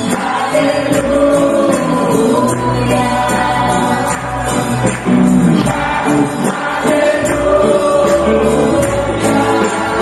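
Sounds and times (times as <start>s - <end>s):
voices singing: 0.0s - 10.0s
worship band playing: 0.0s - 10.0s.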